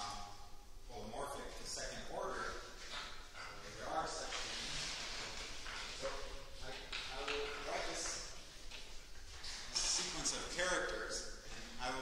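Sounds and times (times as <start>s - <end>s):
man talking: 0.0s - 2.7s, 3.4s - 4.6s, 6.0s - 8.4s, 9.7s - 12.0s.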